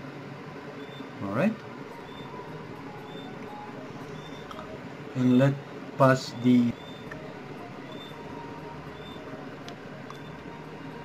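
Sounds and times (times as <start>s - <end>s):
low background hum: 0.0s - 11.0s
faint high chirps: 0.7s - 4.8s, 5.6s - 9.4s, 10.0s - 11.0s.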